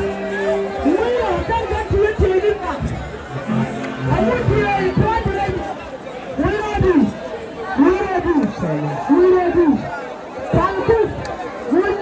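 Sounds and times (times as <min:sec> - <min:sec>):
crowd speaking at once: 0:00.0 - 0:12.0
held musical notes: 0:03.3 - 0:06.0.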